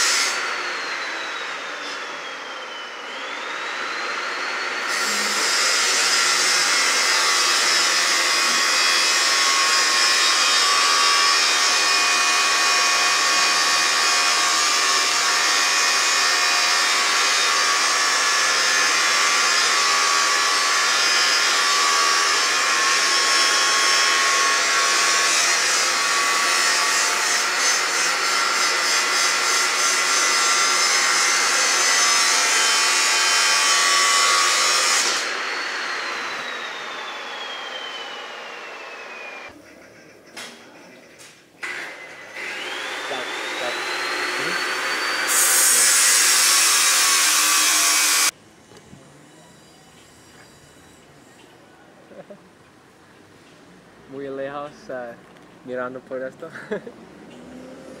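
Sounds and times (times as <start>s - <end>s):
angle grinder cutting steel: 0.0s - 39.6s, 41.6s - 48.4s, 56.5s - 58.0s.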